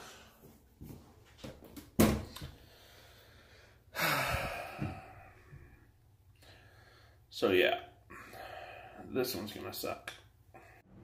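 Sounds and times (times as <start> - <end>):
man sighing: 3.9 - 5.8.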